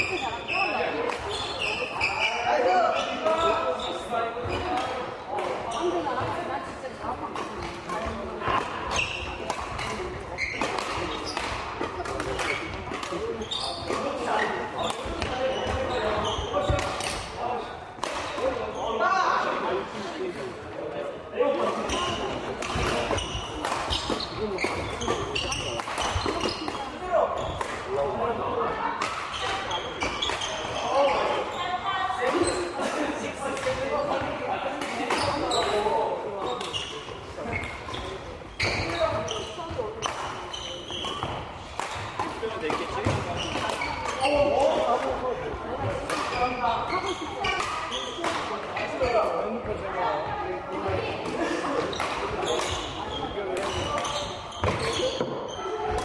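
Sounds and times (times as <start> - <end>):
voices chattering: 0.0 - 56.0
rackets striking shuttlecocks: 22.5 - 27.0, 40.0 - 45.2, 45.8 - 48.7, 51.2 - 56.0.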